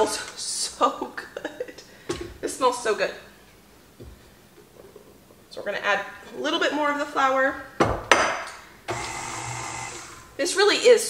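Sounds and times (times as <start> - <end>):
stand mixer motor whirring: 8.9 - 10.3.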